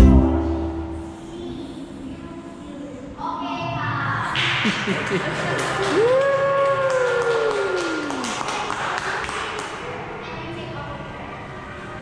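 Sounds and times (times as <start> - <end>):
downward sliding pitched note: 0.0 - 1.3
background noise: 0.0 - 12.0.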